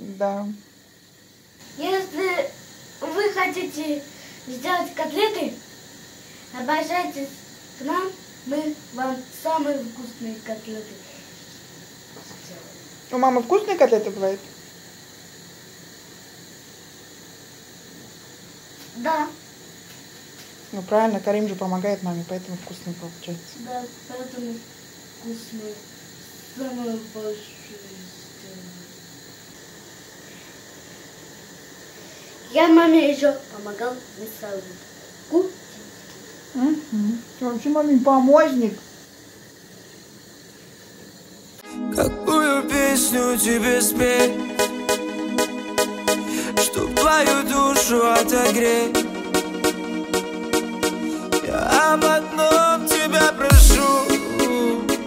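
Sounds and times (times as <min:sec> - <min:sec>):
room tone hiss: 0:00.0 - 0:55.0
thin high tones: 0:41.6 - 0:55.0.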